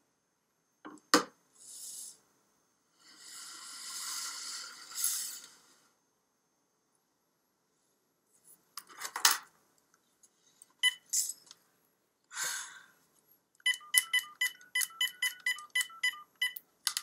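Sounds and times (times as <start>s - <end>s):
phone key beeps: 10.8s - 11.1s, 13.6s - 16.6s.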